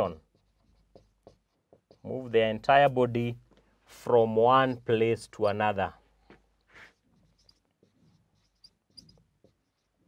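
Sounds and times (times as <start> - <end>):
marker writing on whiteboard: 0.0 - 2.2, 6.7 - 10.0.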